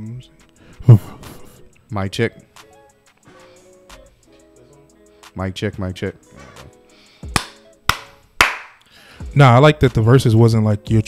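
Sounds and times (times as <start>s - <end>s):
hand claps: 7.3s - 8.8s.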